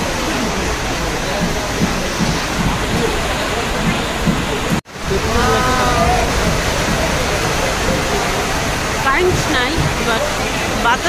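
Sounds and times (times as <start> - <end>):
electric fans rushing: 0.0 - 11.0
people talking: 0.0 - 11.0.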